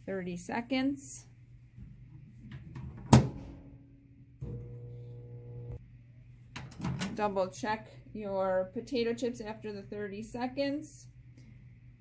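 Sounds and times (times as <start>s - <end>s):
microwave electrical hum: 0.0s - 12.0s.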